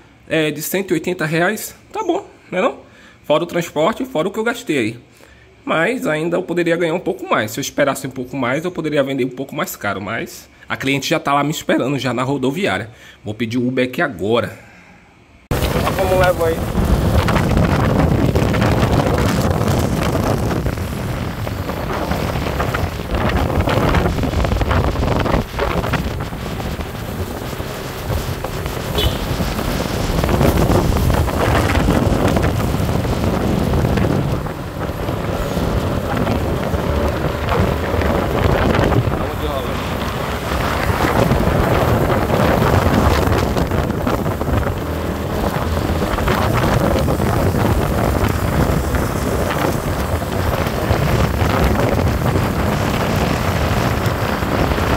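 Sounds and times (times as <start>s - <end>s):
road noise: 14.6s - 54.9s
motorcycle engine running: 15.5s - 54.9s
wind buffeting microphone: 15.5s - 54.9s.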